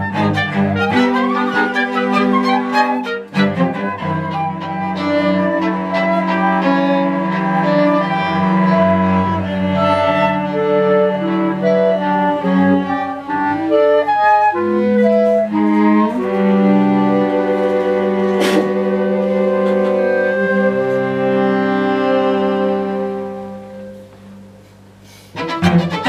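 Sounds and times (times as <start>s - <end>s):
bowed strings chamber music: 0.0s - 26.0s.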